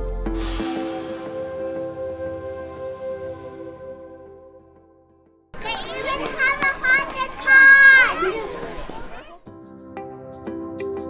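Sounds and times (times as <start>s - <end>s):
ambient lounge music: 0.0s - 5.5s, 9.5s - 11.0s
children's voices: 5.6s - 9.5s.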